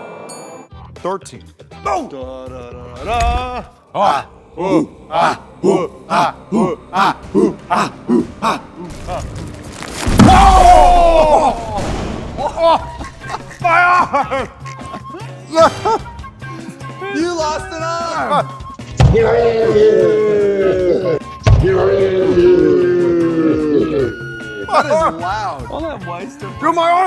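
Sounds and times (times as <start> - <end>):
people screaming and yelling: 10.0 - 14.4, 17.9 - 25.1.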